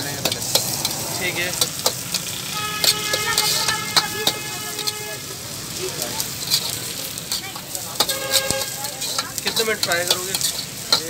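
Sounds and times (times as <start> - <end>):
food sizzling in hot oil: 0.0 - 11.0
metal ladle scraping a wok: 0.1 - 11.0
steady horn-like tone: 2.4 - 5.3.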